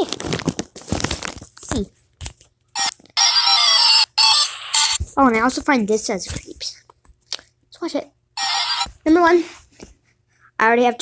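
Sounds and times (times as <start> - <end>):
shrill harsh sound bursts: 2.8 - 5.0, 8.4 - 8.9.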